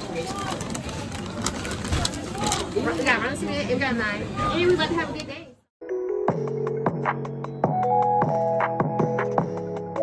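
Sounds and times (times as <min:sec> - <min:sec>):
indistinct chatter of diners: 0:00.0 - 0:05.7.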